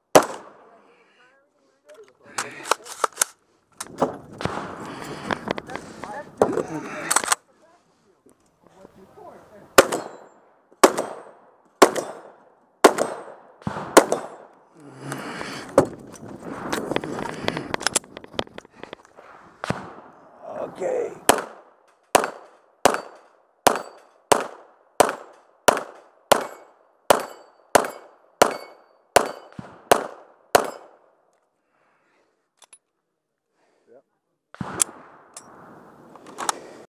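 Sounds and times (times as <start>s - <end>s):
rapid pistol shots: 0.1s - 0.6s, 9.8s - 14.5s, 21.2s - 31.0s
shotgun shots: 0.1s - 0.8s, 4.0s - 4.8s, 9.8s - 14.5s, 19.2s - 20.1s, 21.2s - 31.0s, 34.6s - 35.8s.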